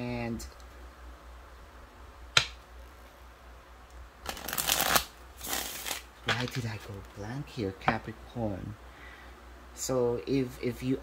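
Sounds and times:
cards being shuffled: 0:04.2 - 0:07.2.

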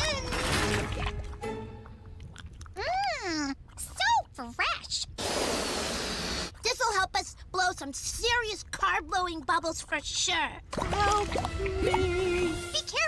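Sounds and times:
quiet background music: 0:00.0 - 0:02.6, 0:10.8 - 0:13.0
hissing noise: 0:05.2 - 0:06.5.

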